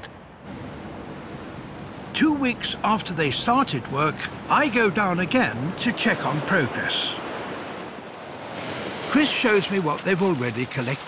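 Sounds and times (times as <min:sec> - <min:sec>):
sea waves: 0:00.0 - 0:11.0
wind: 0:00.0 - 0:11.0.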